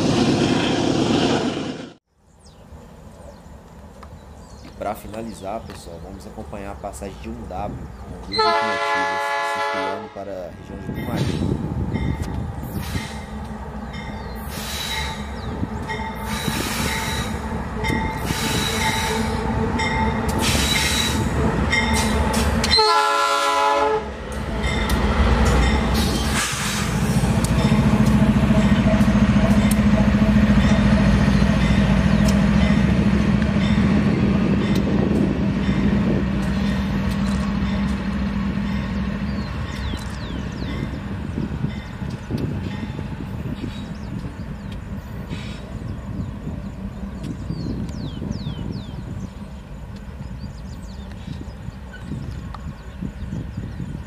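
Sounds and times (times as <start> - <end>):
diesel locomotive engines droning: 0.0 - 54.0
locomotive horn toots: 8.3 - 11.2, 16.2 - 24.2.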